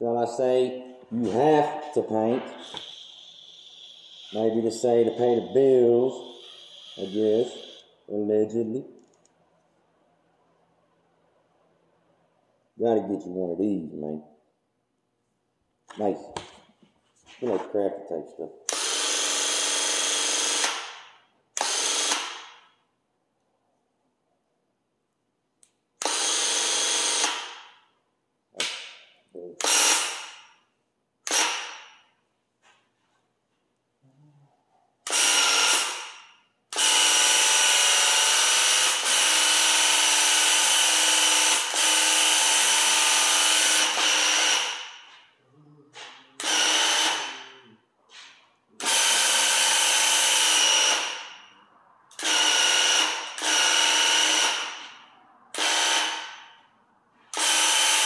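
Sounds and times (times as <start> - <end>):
paint sprayer pump bursts: 2.6 - 7.8.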